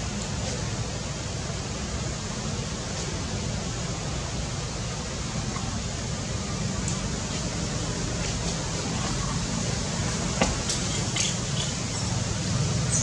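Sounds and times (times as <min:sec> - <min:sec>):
even hiss: 0:00.0 - 0:13.0.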